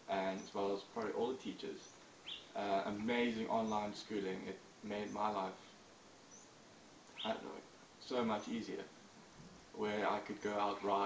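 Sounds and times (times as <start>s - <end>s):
man speaking: 0.0s - 1.8s, 2.6s - 5.7s, 7.2s - 8.9s, 9.8s - 11.0s
bird chirp: 0.0s - 8.8s.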